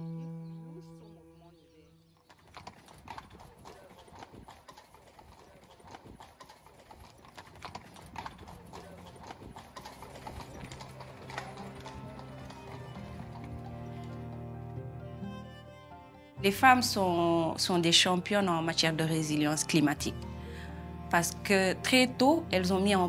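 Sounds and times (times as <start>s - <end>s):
background music: 0.0s - 2.1s, 7.6s - 23.0s
horse hooves clip-clopping: 2.1s - 15.3s.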